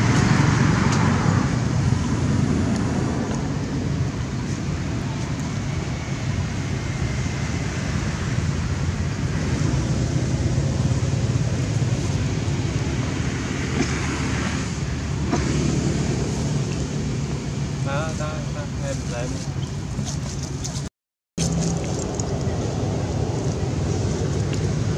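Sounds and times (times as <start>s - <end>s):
low outdoor rumble: 0.0s - 24.9s.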